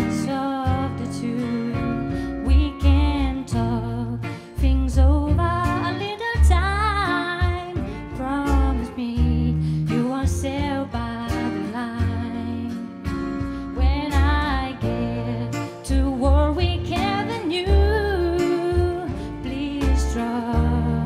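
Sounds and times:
woman singing with vibrato: 0.0s - 13.0s, 13.6s - 21.0s
band with guitar: 0.0s - 21.0s.

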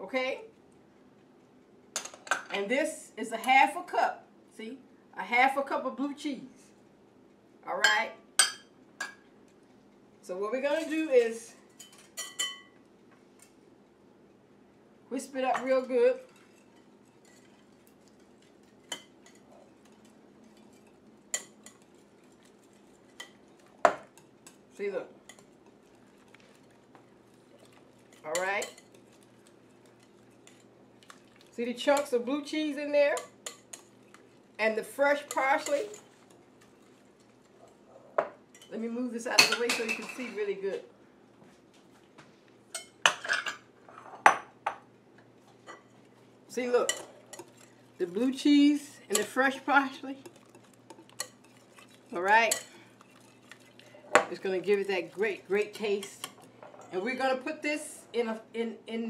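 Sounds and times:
glass bowls and utensils clinking: 11.8s - 12.7s
whisk stirring: 15.6s - 32.3s, 33.2s - 37.8s, 46.8s - 56.5s
whisk clinking against glass: 50.2s - 54.4s.

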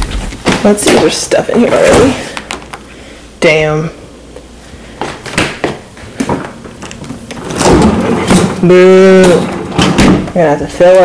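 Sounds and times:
freezer drawer sliding open: 7.3s - 8.6s.

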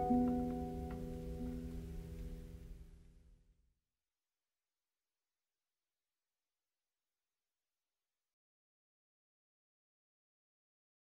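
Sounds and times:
acoustic guitar chord ringing: 0.0s - 2.1s.

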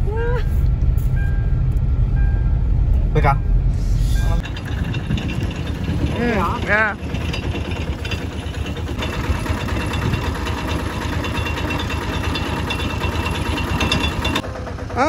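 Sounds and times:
small engine running: 4.4s - 15.0s.

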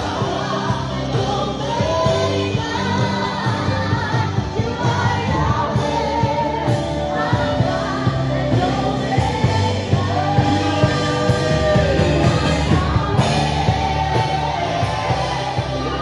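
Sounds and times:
praise band playing: 0.0s - 16.0s
steady drum beat: 0.0s - 16.0s
voices singing together: 0.0s - 16.0s.

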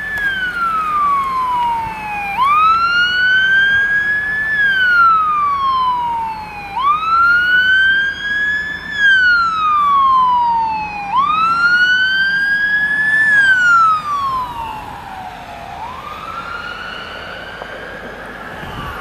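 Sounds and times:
siren wailing: 0.0s - 19.0s.

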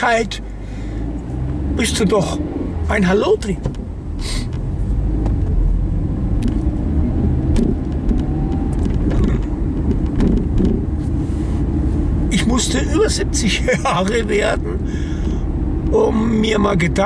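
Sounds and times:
car engine and road noise: 0.0s - 17.0s.

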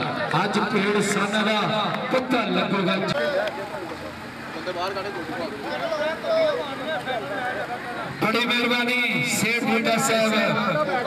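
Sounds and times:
man talking: 0.0s - 3.8s, 4.6s - 11.0s
outdoor crowd noise: 0.0s - 11.0s.

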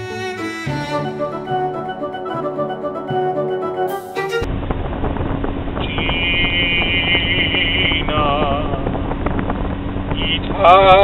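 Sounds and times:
high wavering tone: 0.0s - 4.5s
low hum: 4.4s - 11.0s
road and engine noise: 4.5s - 11.0s.

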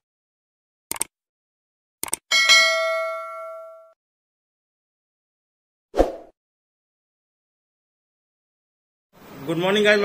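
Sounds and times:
notification bell ding: 2.3s - 4.0s.

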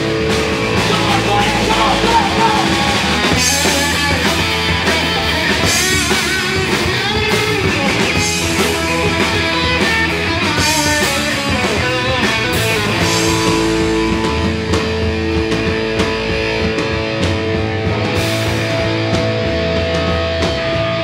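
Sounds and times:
distorted electric guitars: 0.0s - 21.0s
drums: 0.0s - 21.0s.

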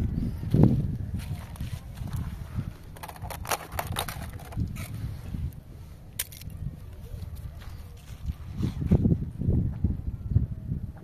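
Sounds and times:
wind rumbling on microphone: 0.0s - 11.0s
crunches and crackles: 1.2s - 5.0s.

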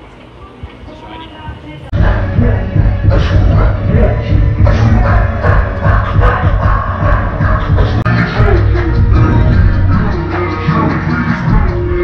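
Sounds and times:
club music with heavy bass beat: 1.9s - 12.0s.

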